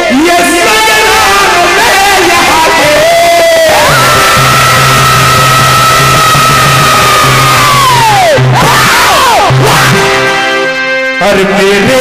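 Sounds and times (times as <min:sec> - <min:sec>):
man singing a long high note: 0:00.0 - 0:10.3
group accompaniment: 0:00.6 - 0:12.0.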